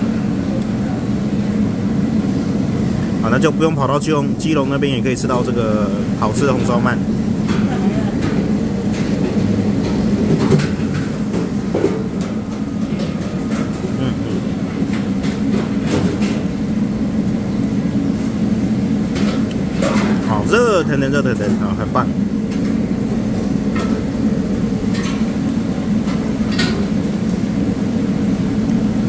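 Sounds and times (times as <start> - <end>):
low rumble of background noise: 0.0 - 29.0.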